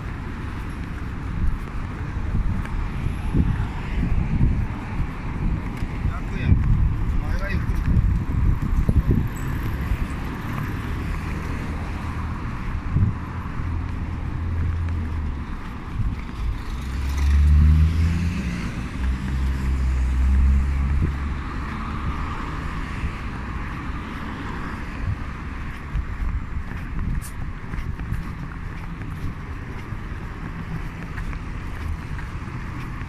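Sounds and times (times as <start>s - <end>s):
cars passing on street: 0.0s - 33.0s.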